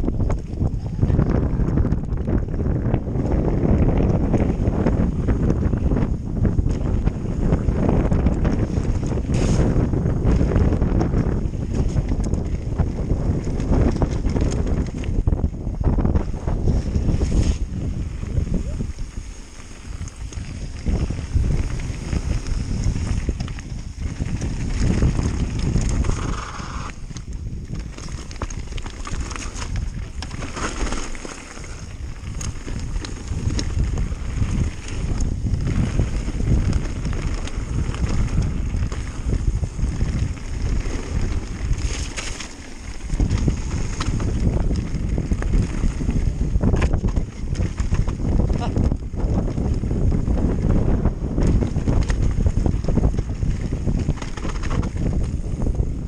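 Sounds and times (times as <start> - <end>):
bike riding on loose gravel: 0.0 - 56.0
wind buffeting microphone: 0.0 - 56.0
clicks and knocks of stones: 18.4 - 50.3, 51.3 - 55.7.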